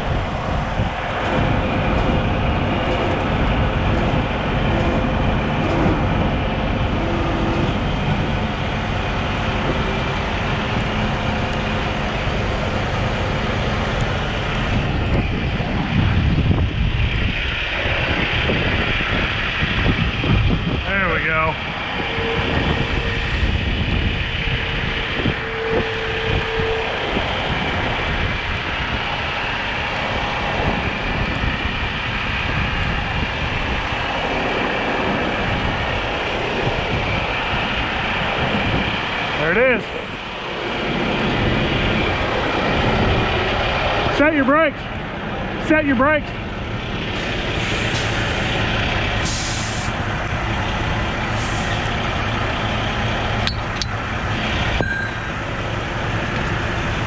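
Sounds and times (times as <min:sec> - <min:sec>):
diesel engines under load: 0:00.0 - 0:57.0
wind on microphone: 0:13.8 - 0:44.1.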